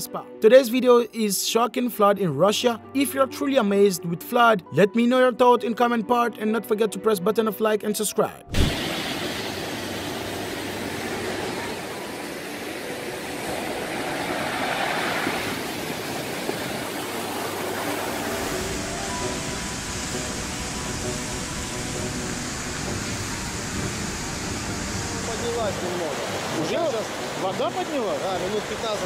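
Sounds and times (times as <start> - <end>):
faint background music: 0.0 - 29.0
rushing floodwater and surf: 8.5 - 29.0.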